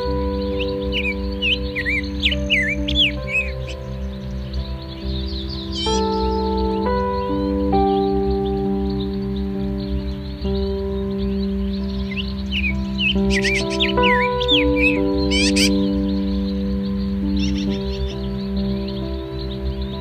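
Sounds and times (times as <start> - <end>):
calm ambient music: 0.0 - 20.0
lovebirds chirping shrilly: 0.0 - 20.0.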